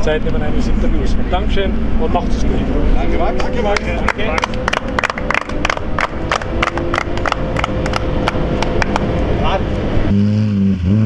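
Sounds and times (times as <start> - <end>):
people clapping: 3.4 - 9.2.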